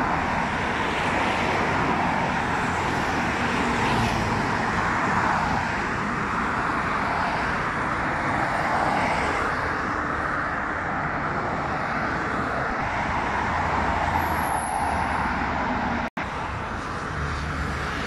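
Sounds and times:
highway traffic noise: 0.0 - 18.0.

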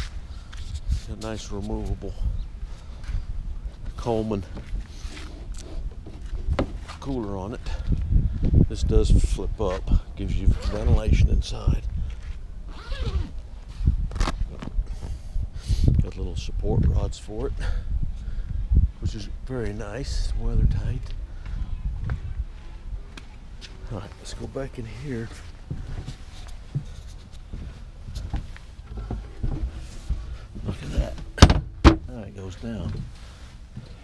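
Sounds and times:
canvas flap rubbing and rasping: 12.7 - 13.4, 14.1 - 14.7.

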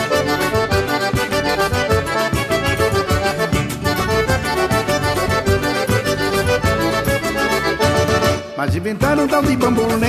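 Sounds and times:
accordion: 0.0 - 10.0
percussion beat: 0.0 - 10.0.

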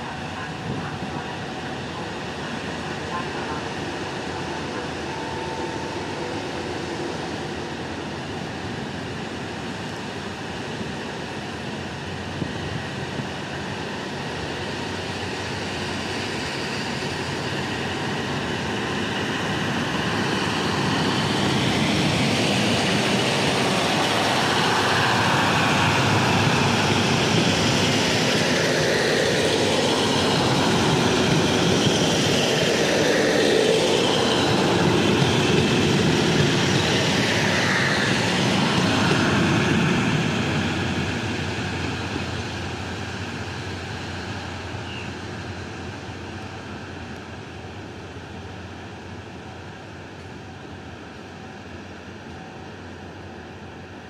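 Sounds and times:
diesel train engines: 0.0 - 54.0
train wheels rolling on rails: 0.0 - 54.0.

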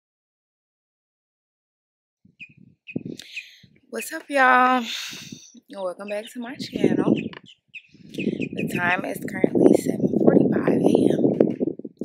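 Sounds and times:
wind buffeting microphone: 2.2 - 12.0.

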